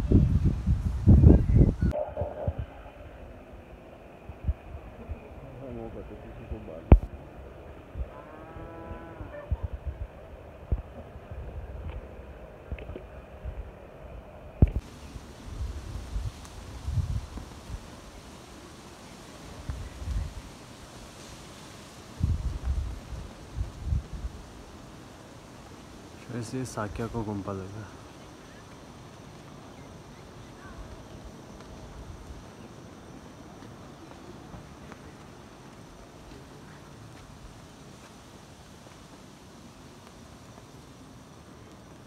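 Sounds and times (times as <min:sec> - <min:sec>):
wind rumbling on microphone: 0:00.0 - 0:27.3.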